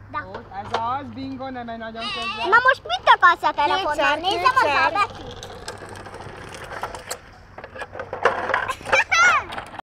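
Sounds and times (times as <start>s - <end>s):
plastic toy clicks and knocks on paving: 2.5s - 9.8s.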